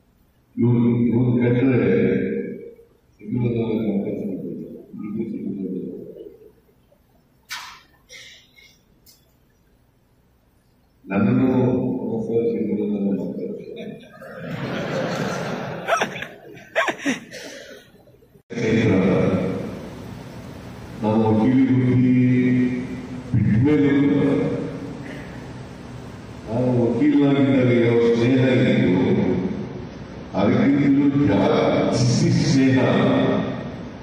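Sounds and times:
room noise: 0:00.0 - 0:34.0
man speaking over public address: 0:00.6 - 0:06.3, 0:11.1 - 0:14.1, 0:18.5 - 0:19.8, 0:21.0 - 0:24.9, 0:26.4 - 0:29.6, 0:30.3 - 0:33.7.

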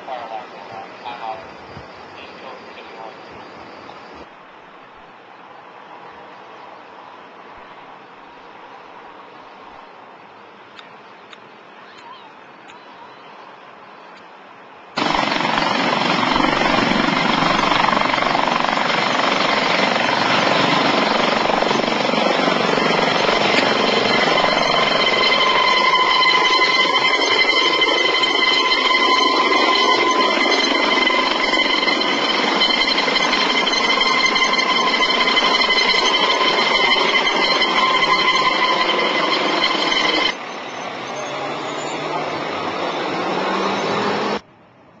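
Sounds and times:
helicopter lifting off: 0:15.0 - 0:40.7.

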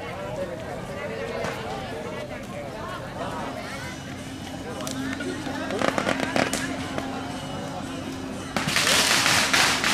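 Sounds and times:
firecracker string crackling: 0:04.7 - 0:09.9
firecracker cracks: 0:05.6 - 0:07.0, 0:08.6 - 0:09.9.

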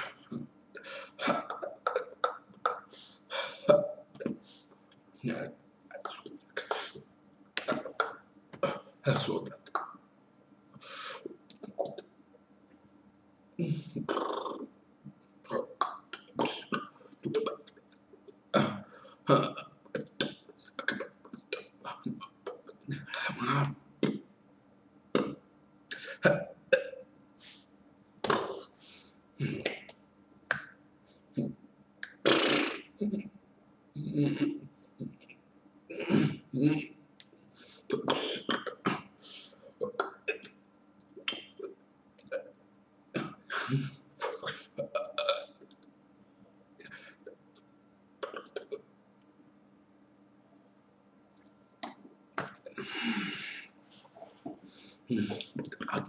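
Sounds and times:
man making guttural vocal sounds: 0:00.0 - 0:04.6, 0:05.2 - 0:07.0, 0:07.6 - 0:09.9, 0:13.6 - 0:14.7, 0:15.4 - 0:17.8, 0:18.5 - 0:24.2, 0:34.0 - 0:37.0, 0:52.4 - 0:56.0.

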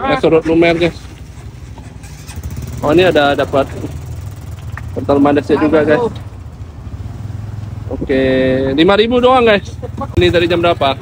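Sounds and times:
vehicle engine rumbling: 0:00.0 - 0:11.0
man talking: 0:05.0 - 0:06.2, 0:07.9 - 0:11.0.

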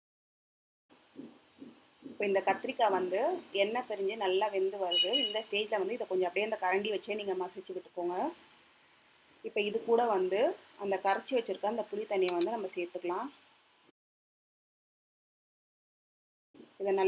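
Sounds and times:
woman talking: 0:02.2 - 0:08.4, 0:09.5 - 0:13.3, 0:16.8 - 0:17.0.

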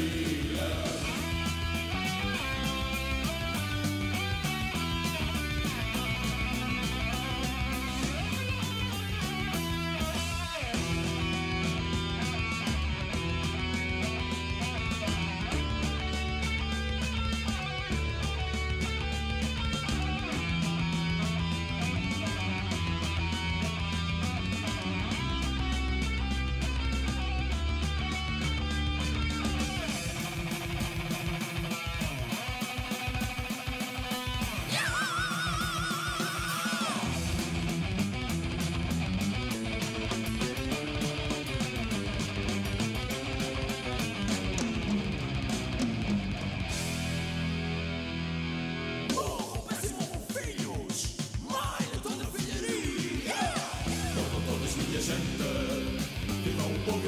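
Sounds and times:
heavy metal band instrumental: 0:00.0 - 0:57.0.

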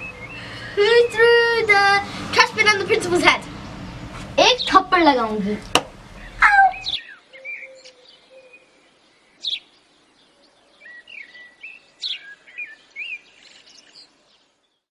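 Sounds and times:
birds chirping: 0:00.0 - 0:14.9
girl yelping: 0:06.4 - 0:06.9.

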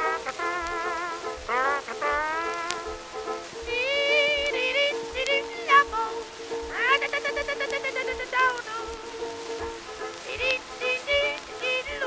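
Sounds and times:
old dance-band music: 0:00.0 - 0:12.0.

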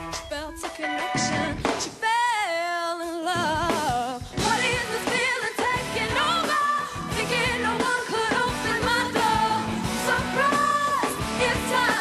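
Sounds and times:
pop-rock band playing: 0:00.0 - 0:02.2, 0:03.3 - 0:12.0
woman singing: 0:00.2 - 0:12.0.

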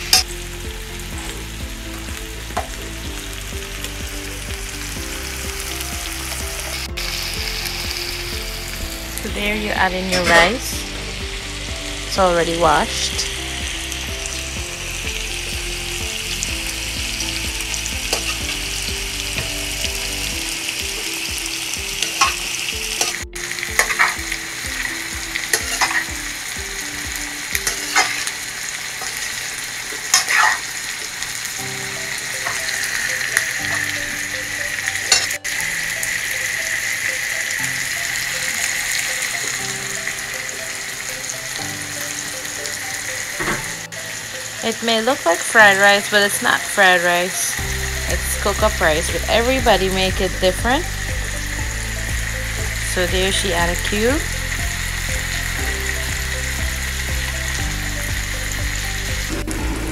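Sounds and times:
rice and vegetables sizzling: 0:00.0 - 0:59.9
metal spoon scraping a pot: 0:30.1 - 0:30.6.

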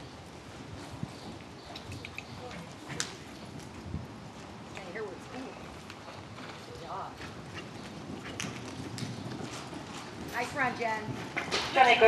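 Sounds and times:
horse hoofbeats on dirt: 0:00.4 - 0:12.0.

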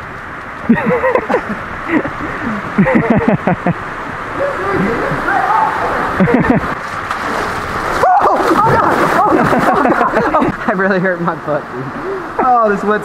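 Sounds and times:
rushing water: 0:00.0 - 0:13.0
men laughing and yelping: 0:00.7 - 0:06.8, 0:08.0 - 0:10.8.

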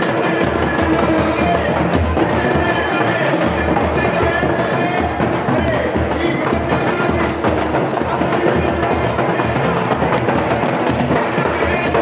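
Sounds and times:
drums beating a driving rhythm: 0:00.0 - 0:12.0.

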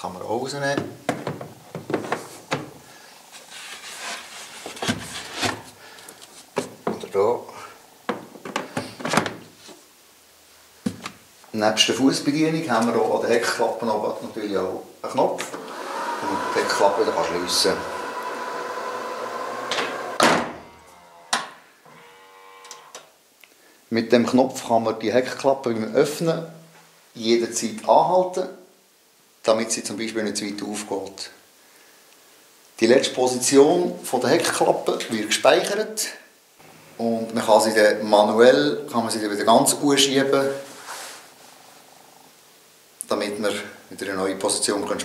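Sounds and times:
sharp knocks of floor panels: 0:00.8 - 0:02.8
rubbing and shuffling: 0:00.9 - 0:07.2
tailgate motor humming and whining: 0:15.6 - 0:22.9
tailgate shutting with a thud: 0:19.8 - 0:20.6.

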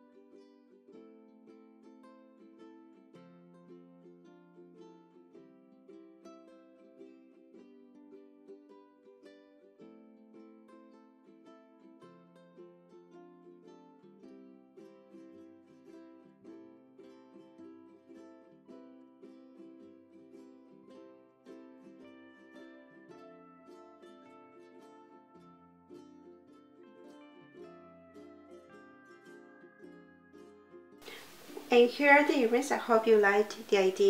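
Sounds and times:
plucked string melody: 0:00.0 - 0:34.0.

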